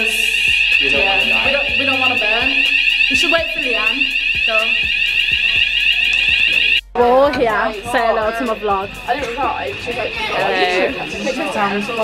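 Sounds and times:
fire alarm sounding: 0.0 - 12.0.

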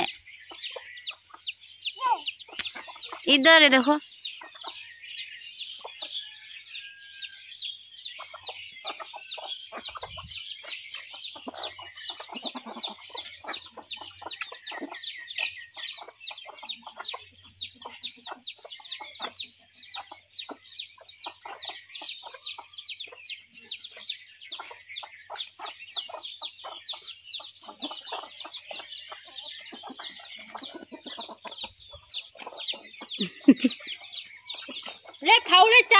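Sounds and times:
hens clucking: 0.0 - 4.8, 7.7 - 35.9
chicks peeping: 0.0 - 35.9.

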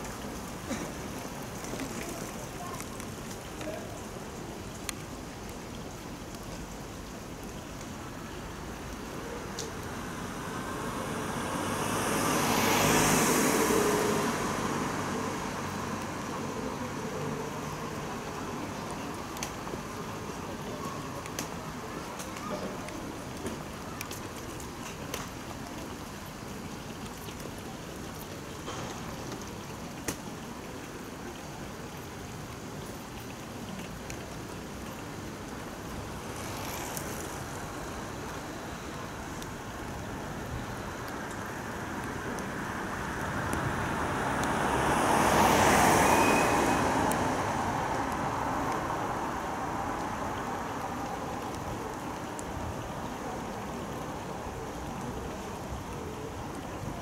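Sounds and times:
light ticks: 4.7 - 6.8, 18.8 - 19.7, 21.2 - 26.2
car passing by: 9.8 - 20.0, 35.7 - 54.4.

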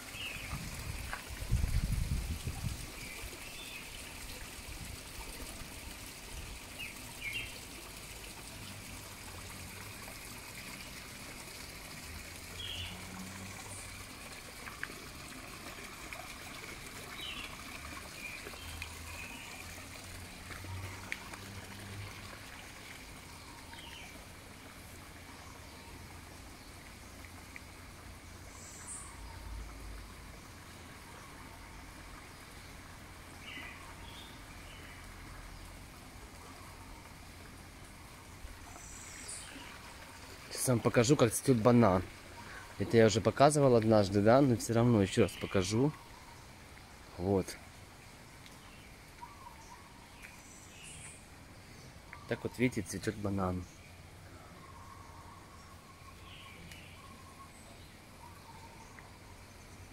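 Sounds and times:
water trickling: 0.0 - 59.9.

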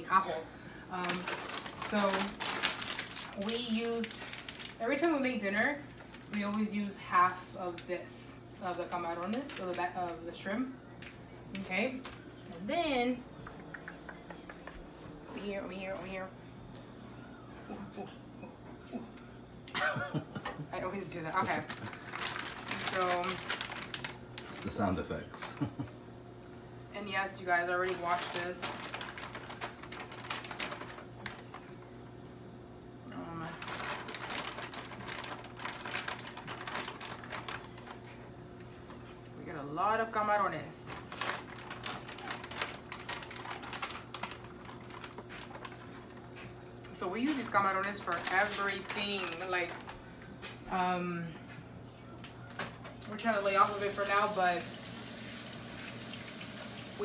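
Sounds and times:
butter and garlic frying: 53.3 - 57.0
faucet running into steel sink: 53.7 - 57.0.

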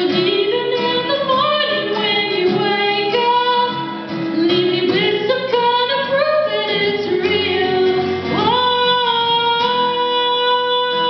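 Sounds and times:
acoustic guitar: 0.0 - 11.0
woman singing: 0.0 - 11.0.

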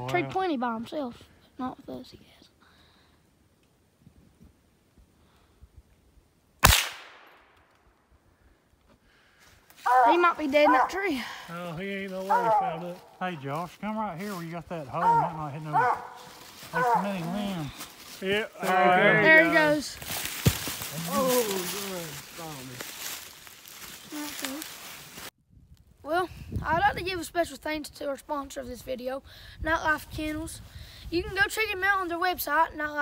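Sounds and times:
gunshot echo: 6.6 - 7.6
leaves rustling and crackling: 9.6 - 26.0
dog scuffling in dry leaves: 20.0 - 25.3.

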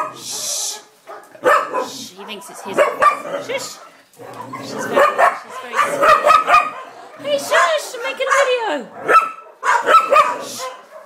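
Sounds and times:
small dog barking: 1.0 - 11.0.

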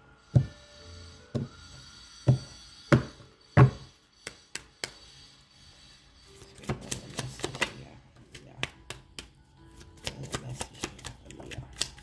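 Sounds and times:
cards being shuffled: 6.4 - 12.0.

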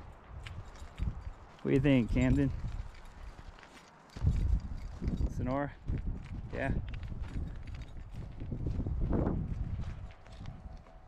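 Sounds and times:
footsteps on dry grass: 0.0 - 11.0.

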